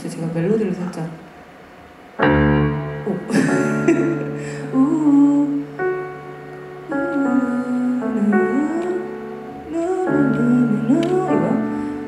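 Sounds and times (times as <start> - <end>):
piano chord ringing: 2.2 - 11.9.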